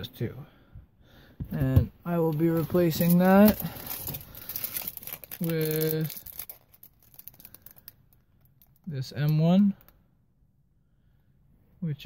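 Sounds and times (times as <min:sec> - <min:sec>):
plastic bag crinkling: 0:02.2 - 0:08.9.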